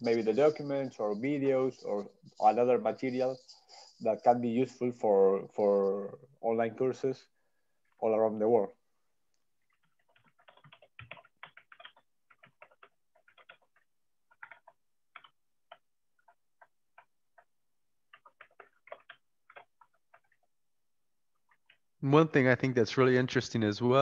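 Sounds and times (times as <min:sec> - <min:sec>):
keyboard typing: 0:09.4 - 0:20.6, 0:21.3 - 0:21.9.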